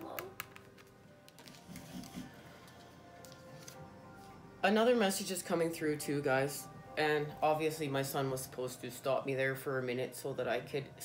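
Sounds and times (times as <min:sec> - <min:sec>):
cards shuffling: 0:00.0 - 0:03.8
soft background music: 0:00.0 - 0:11.0.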